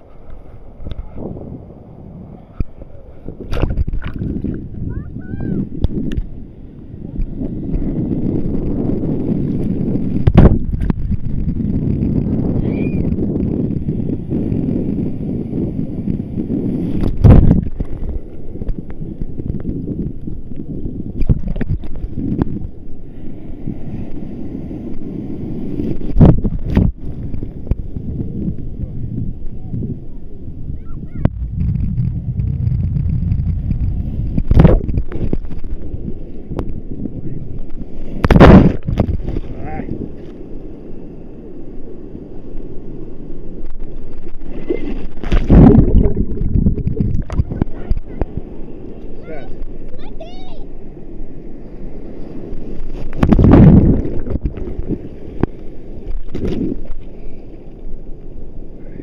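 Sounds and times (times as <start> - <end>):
wind buffeting microphone: 0.0 - 59.0
sea water sloshing: 2.4 - 4.8, 42.7 - 50.0, 50.7 - 58.4.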